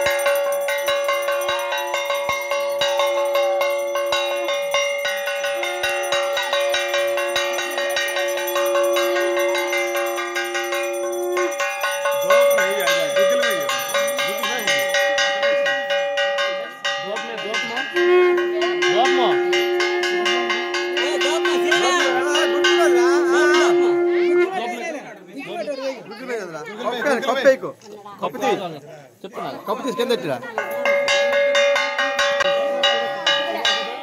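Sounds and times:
voices chanting: 0.0 - 15.1
bells ringing rapidly: 0.0 - 24.6, 29.8 - 34.0.

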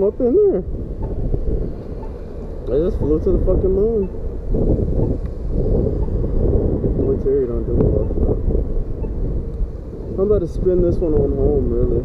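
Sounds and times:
street traffic passing: 0.0 - 12.0
wind buffeting microphone: 0.0 - 12.0.

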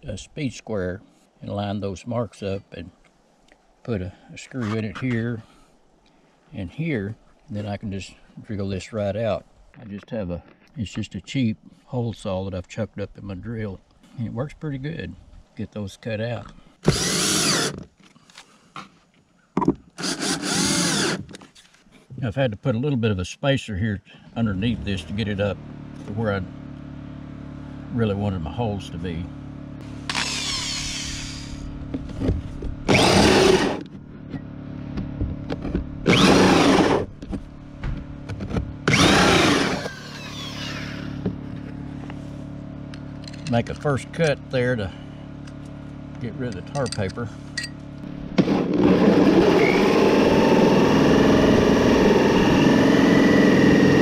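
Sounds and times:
cordless drill driving screws: 16.8 - 17.9, 20.0 - 21.4, 30.1 - 31.7, 32.9 - 33.9, 36.1 - 37.1, 38.8 - 41.2.

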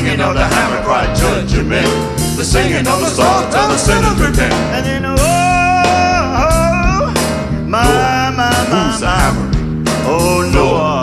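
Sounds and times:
band with bass and drums: 0.0 - 11.0
male vocal quartet singing gospel: 0.0 - 11.0.

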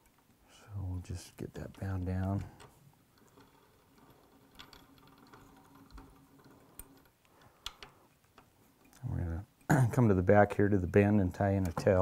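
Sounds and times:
faint small clicks and ticks: 1.0 - 12.0.

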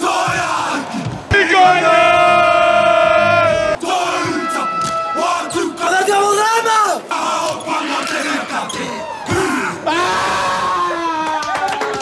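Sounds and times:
choppy shouting and chanting: 0.0 - 11.0.

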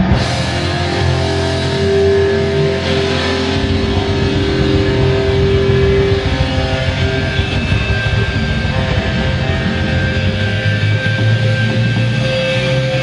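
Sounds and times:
rock band electric guitars: 0.0 - 13.0.

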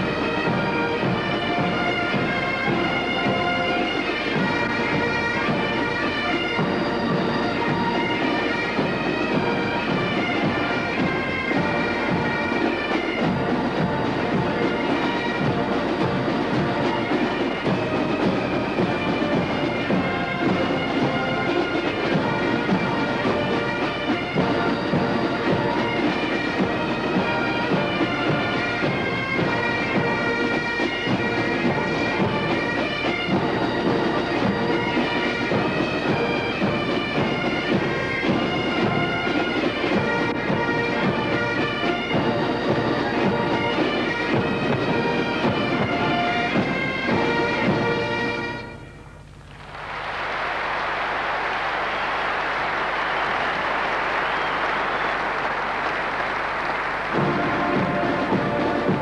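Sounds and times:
bagpipes playing a tune: 0.0 - 50.1, 52.7 - 59.0
marching bass and side drums: 0.0 - 59.0.

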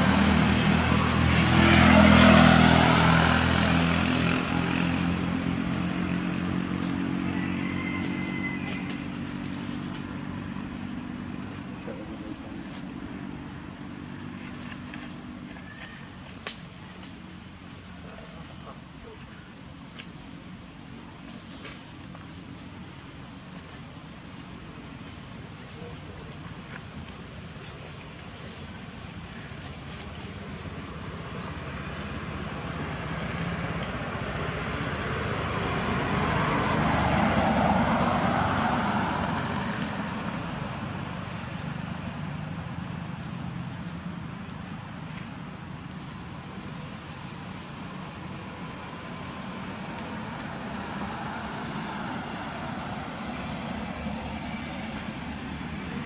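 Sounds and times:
motor vehicle passing: 0.0 - 16.0, 28.4 - 56.0.

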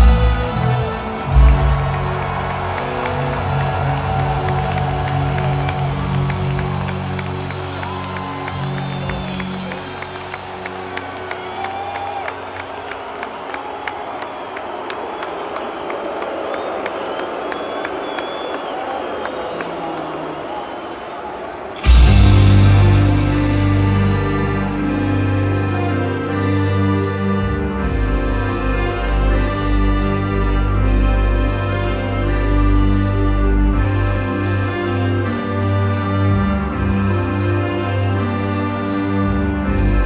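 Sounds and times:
crowd clapping: 0.0 - 22.9
crowd whistling: 0.0 - 23.1
crowd cheering: 0.0 - 27.2.

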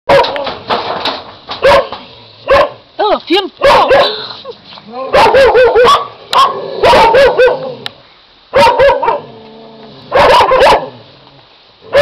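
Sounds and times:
puppy yapping: 5.1 - 7.8, 10.1 - 10.9.

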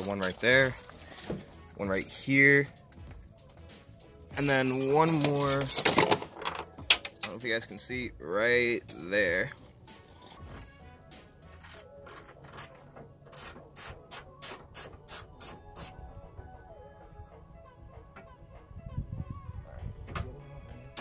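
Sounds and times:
ratchet wrench clicking: 10.1 - 10.8, 11.4 - 12.7, 13.3 - 15.9.

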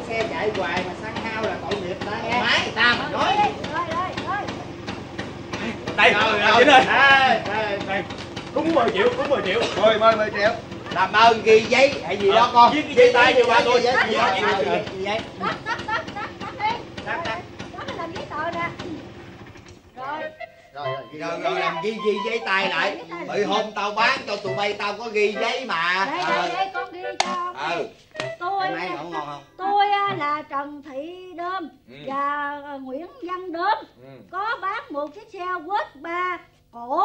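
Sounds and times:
scooter engine idling: 0.0 - 29.3
voices talking: 0.0 - 36.2.

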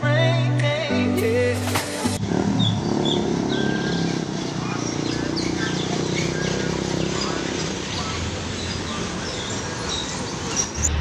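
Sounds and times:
bus engines idling: 1.9 - 11.0
birds chirping: 2.2 - 11.0.

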